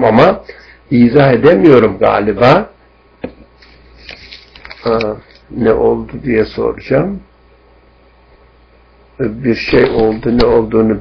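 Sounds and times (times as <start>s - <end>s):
man talking: 0.0s - 2.8s, 4.8s - 7.3s, 9.2s - 11.0s
low steady hum: 0.0s - 11.0s.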